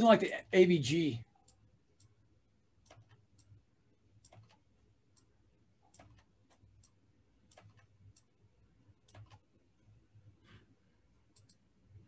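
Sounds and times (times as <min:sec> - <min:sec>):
keyboard typing clicks: 0:02.8 - 0:03.6, 0:04.2 - 0:05.3, 0:05.9 - 0:08.3, 0:09.0 - 0:09.5, 0:11.3 - 0:11.6.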